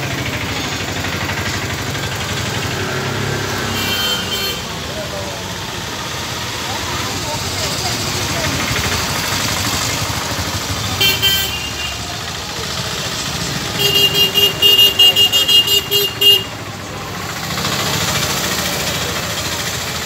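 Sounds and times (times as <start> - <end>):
street traffic: 0.0 - 20.0
vehicle horn beeping: 3.6 - 4.8, 10.9 - 12.1, 13.7 - 16.6.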